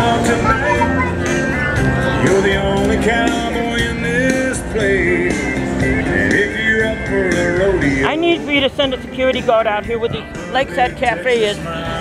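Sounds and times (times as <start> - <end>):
live band playing country-rock: 0.0 - 12.0.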